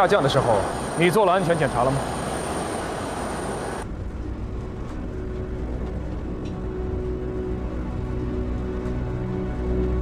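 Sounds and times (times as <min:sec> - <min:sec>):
low drone of background music: 0:00.0 - 0:10.0
low rumble: 0:02.5 - 0:10.0.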